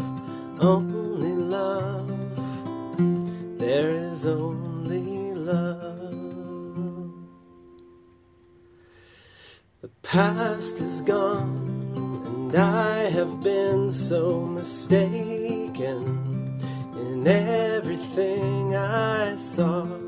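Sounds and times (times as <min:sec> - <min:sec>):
strummed acoustic guitar: 0:00.0 - 0:09.1, 0:09.8 - 0:20.0.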